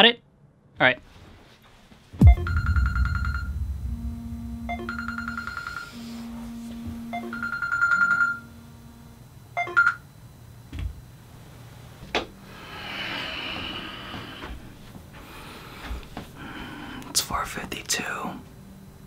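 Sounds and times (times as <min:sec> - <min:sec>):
thump: 0:02.2 - 0:07.1
short sharp sounds: 0:02.2 - 0:07.5
low hum: 0:02.2 - 0:09.6
phone alarm ringtone: 0:07.1 - 0:08.5.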